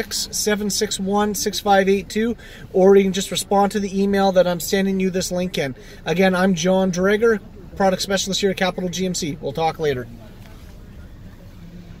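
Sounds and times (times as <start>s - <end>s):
low rumble in car cabin: 0.0s - 12.0s.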